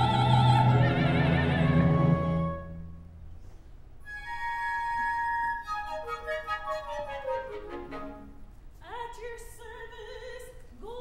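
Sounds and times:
orchestra playing: 0.0s - 3.2s, 4.1s - 8.5s.

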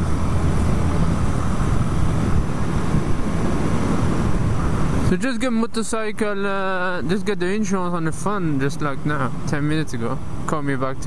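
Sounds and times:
wind noise on microphone: 0.0s - 5.2s.

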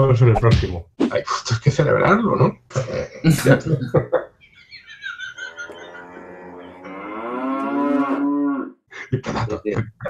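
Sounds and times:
cow mooing: 5.7s - 8.8s.

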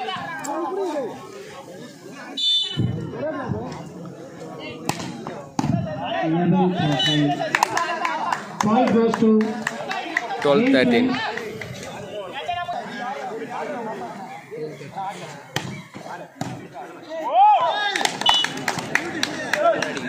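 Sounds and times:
crowd talking and shouting: 0.0s - 20.0s.

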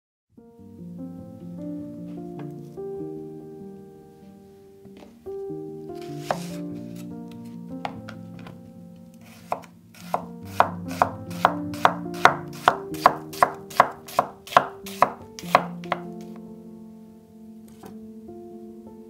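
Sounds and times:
soft background music: 0.3s - 19.0s
knife slicing onion on board: 6.1s - 6.6s, 9.2s - 16.1s.

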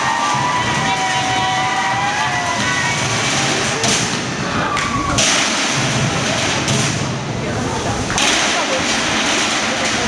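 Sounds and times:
drum ensemble thudding: 0.0s - 10.0s.

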